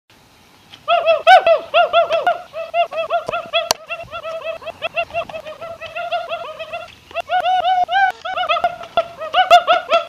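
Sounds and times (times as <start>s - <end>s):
high-pitched voice whooping: 0.9s - 10.0s.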